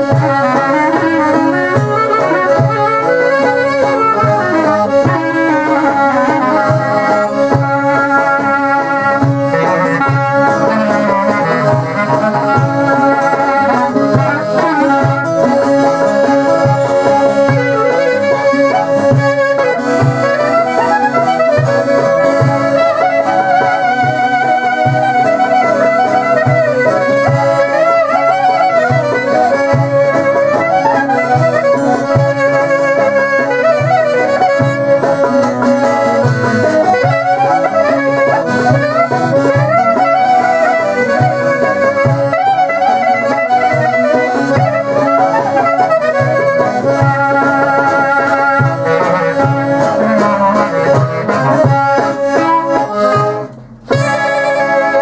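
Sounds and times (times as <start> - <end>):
folk clarinet melody: 0.0 - 55.0
lute accordion and percussion: 0.0 - 55.0.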